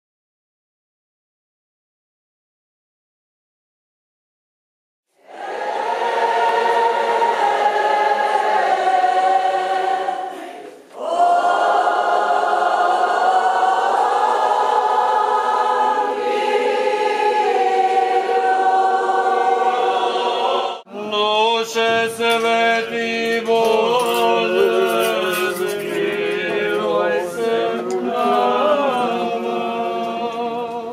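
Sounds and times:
group singing a slow hymn: 0:05.2 - 0:30.9.

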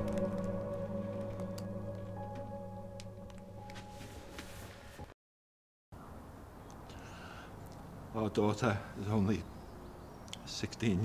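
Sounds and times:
ambient music drone: 0:00.0 - 0:04.9.

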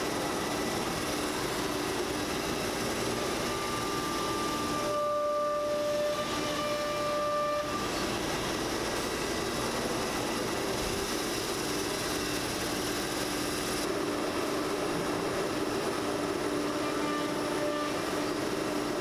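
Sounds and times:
cnc router and vacuum pumps running: 0:00.0 - 0:19.0
high whine: 0:00.0 - 0:19.0.

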